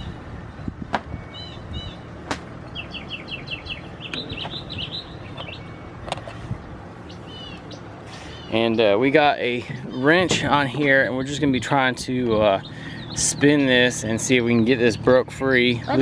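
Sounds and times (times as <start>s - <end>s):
songbirds chirping: 0.0s - 16.0s.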